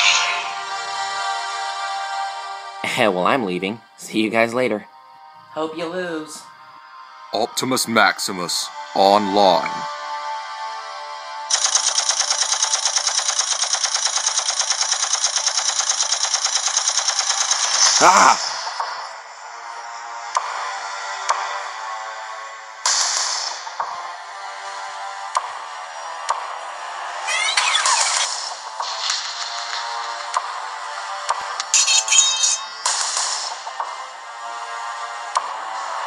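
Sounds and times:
soundtrack music: 0.0s - 3.5s
rapid-fire gunshots: 11.5s - 18.9s, 27.7s - 30.3s, 32.8s - 33.7s.

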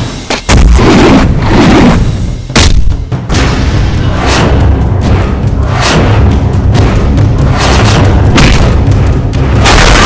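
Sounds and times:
action film score: 0.0s - 10.0s
deep booming bass: 0.5s - 10.0s.

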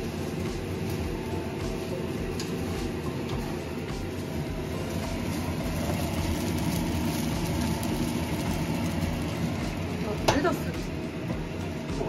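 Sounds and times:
range hood fan hum: 0.0s - 12.0s
rice sizzling in frying pan: 0.0s - 12.0s.

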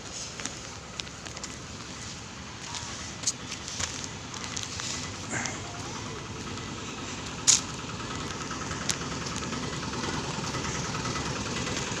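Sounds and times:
street traffic: 0.0s - 12.0s
vehicle engine running: 0.0s - 12.0s.

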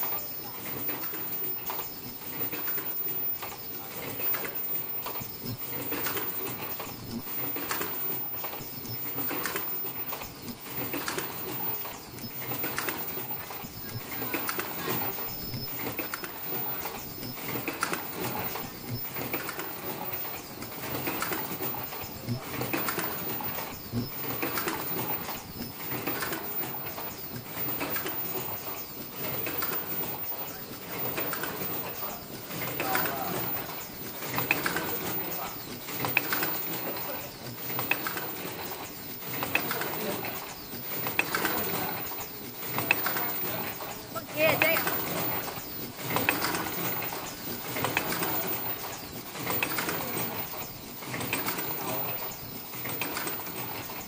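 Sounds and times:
production line machinery clattering: 0.0s - 54.0s.

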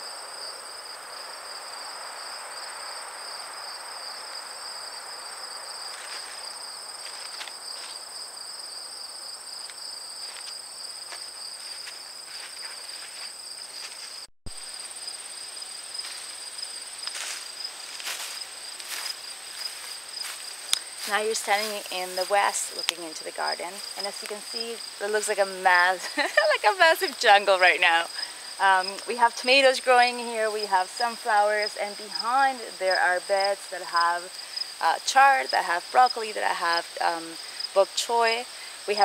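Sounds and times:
crickets chirring: 0.0s - 39.0s
faint outdoor hiss: 0.0s - 39.0s.

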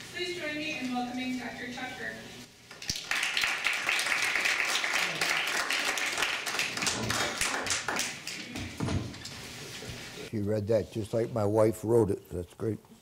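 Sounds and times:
audience applauding: 2.8s - 8.5s.

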